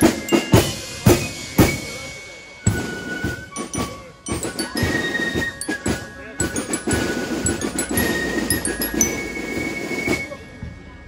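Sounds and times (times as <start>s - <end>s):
snare drums: 0.0s - 10.4s.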